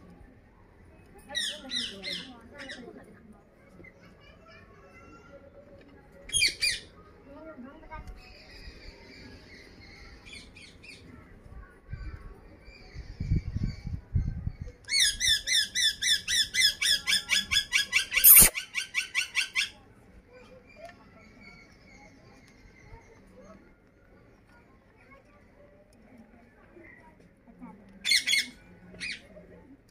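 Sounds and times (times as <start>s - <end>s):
parakeet squawk: 18.2s - 18.5s
rising high chirps: 18.2s - 18.5s
sharp click: 18.2s - 18.5s.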